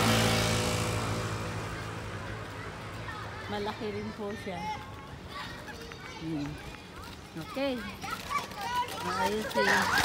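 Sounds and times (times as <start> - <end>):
motor scooter passing: 0.0 - 10.0.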